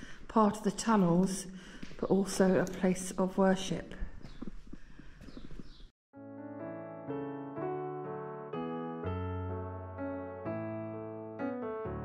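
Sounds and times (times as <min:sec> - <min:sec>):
footsteps on stone floor: 0:00.1 - 0:05.9
solo piano music: 0:06.1 - 0:12.0.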